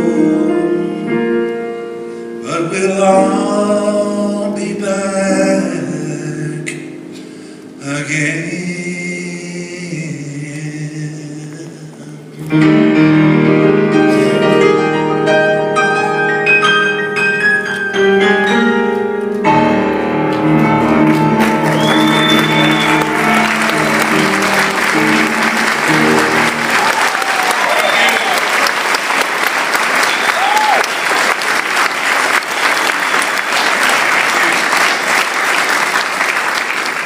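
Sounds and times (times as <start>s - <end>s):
piano chords ringing: 0.0s - 28.4s
audience applause: 20.3s - 37.0s
whistling from audience: 21.6s - 24.3s, 26.8s - 28.4s.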